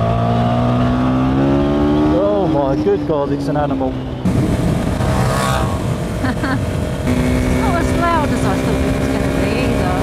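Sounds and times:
motorcycle engine running: 0:00.0 - 0:10.0
wind rushing over microphone: 0:04.2 - 0:10.0.

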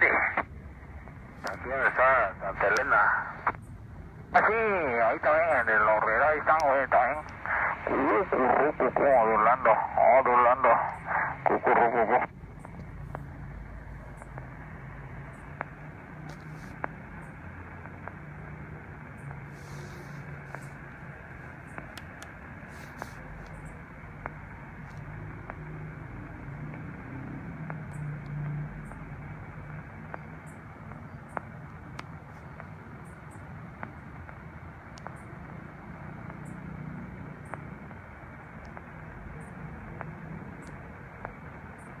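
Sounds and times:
radio static hiss: 0:00.0 - 0:42.0
faint clicks and crackles: 0:05.2 - 0:14.6, 0:15.3 - 0:25.7, 0:26.3 - 0:42.0.

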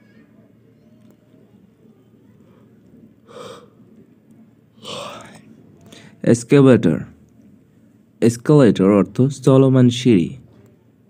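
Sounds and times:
person breathing: 0:02.4 - 0:03.8, 0:04.8 - 0:06.2.

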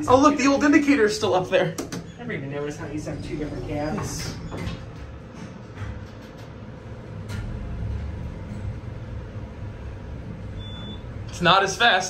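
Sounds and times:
elevator cab rumble: 0:02.6 - 0:11.3.

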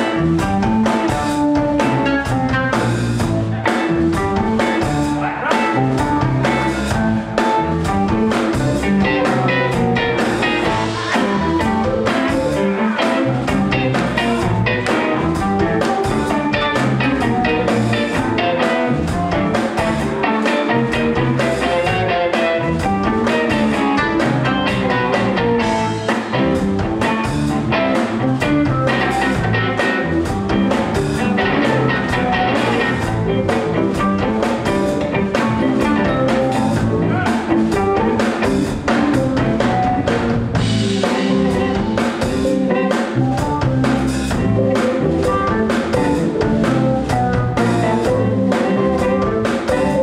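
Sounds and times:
drum kit playing: 0:00.0 - 0:50.0
electric bass: 0:00.0 - 0:50.0
electric guitar: 0:00.0 - 0:50.0.

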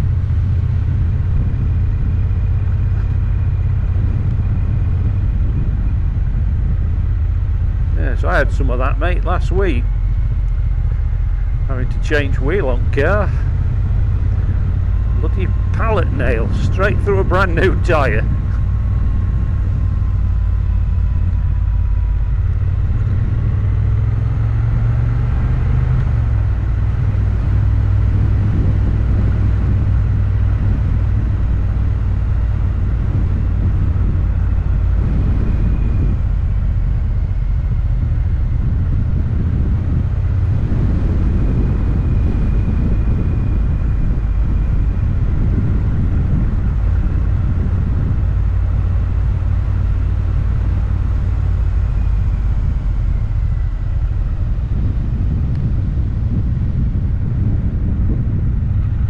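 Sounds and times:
motorcycle engine drone: 0:00.0 - 0:59.0
wind noise: 0:00.0 - 0:59.0.

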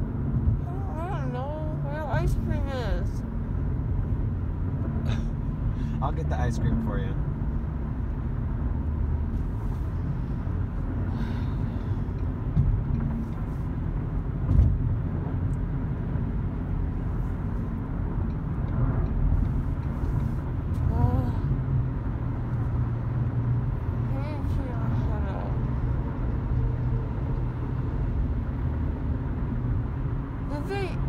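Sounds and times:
road rumble inside car: 0:00.0 - 0:31.0
car bump: 0:14.4 - 0:15.0.

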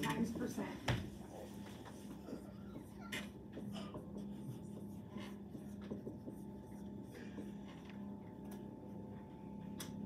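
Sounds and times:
marker squeaking on whiteboard: 0:01.2 - 0:08.1.

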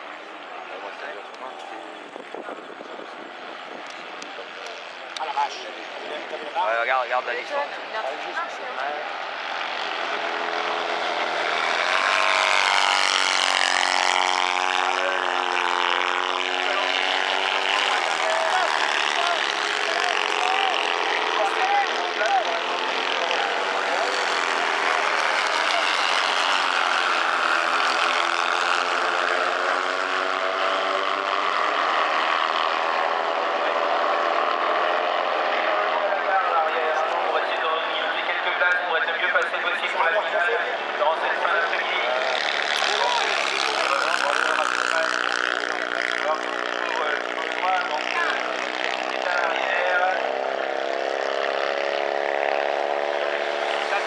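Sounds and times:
racing engines at high revs: 0:00.0 - 0:54.0.

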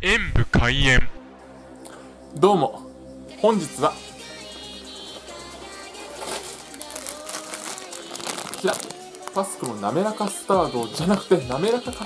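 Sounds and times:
plastic wrapper crinkling: 0:06.0 - 0:12.0.

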